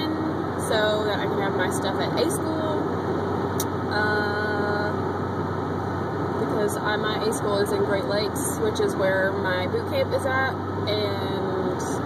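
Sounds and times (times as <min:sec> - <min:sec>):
car cabin road and engine noise: 0:00.0 - 0:12.0.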